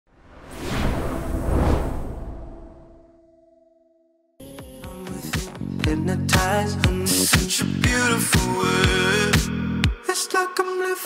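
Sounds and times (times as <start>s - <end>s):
whoosh with deep rumble: 0.1s - 3.2s.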